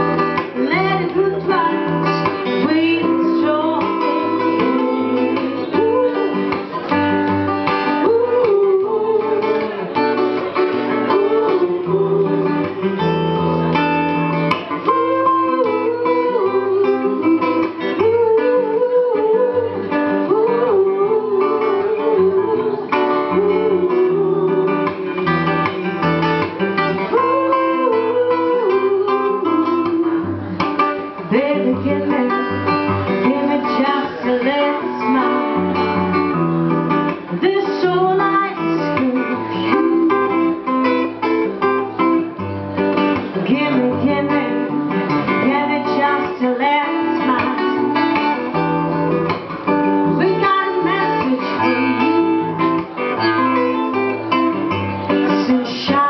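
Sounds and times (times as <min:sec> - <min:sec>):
person singing: 0:00.0 - 0:56.0
strummed acoustic guitar: 0:00.0 - 0:56.0.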